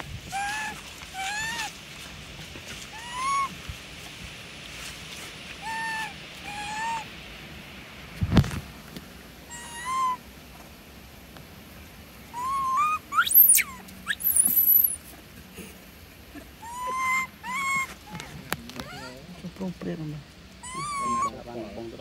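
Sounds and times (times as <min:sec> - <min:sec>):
monkey screaming: 0:00.3 - 0:01.7, 0:02.9 - 0:03.6, 0:05.6 - 0:07.1, 0:09.5 - 0:10.2, 0:12.3 - 0:15.0, 0:16.6 - 0:19.2, 0:20.6 - 0:21.4
monkeys coo calling: 0:00.3 - 0:01.7, 0:03.0 - 0:03.6, 0:05.6 - 0:07.1, 0:09.5 - 0:10.2, 0:12.3 - 0:15.0, 0:16.3 - 0:19.3, 0:20.6 - 0:21.5
thin squeal: 0:13.2 - 0:15.0.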